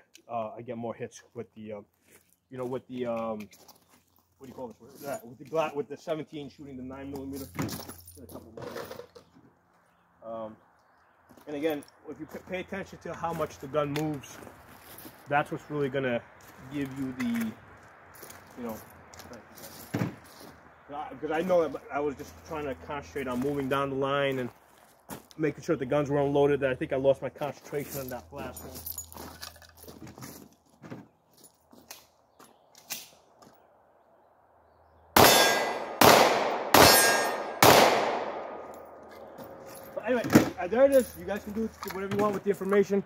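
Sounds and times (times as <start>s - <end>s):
pistol clinking: 35.2s - 39.9s.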